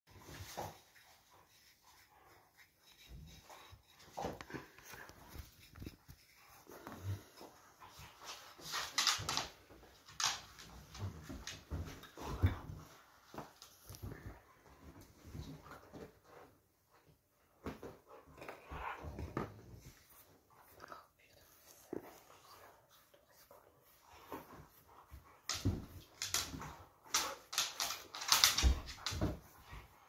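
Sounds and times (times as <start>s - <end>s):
dogs scuffling: 23.9s - 30.0s.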